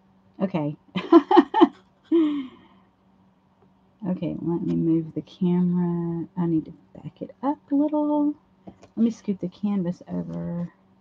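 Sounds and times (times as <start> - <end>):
woman sighing: 2.1 - 2.7.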